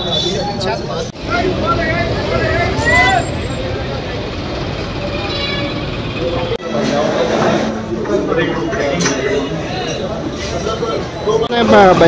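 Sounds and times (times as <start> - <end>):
bus engines rumbling: 0.0 - 12.0
voices talking: 0.0 - 12.0.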